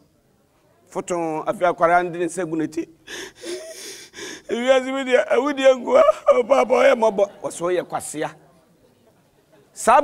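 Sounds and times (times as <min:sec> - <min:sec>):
breathy gasping: 0:03.0 - 0:04.5.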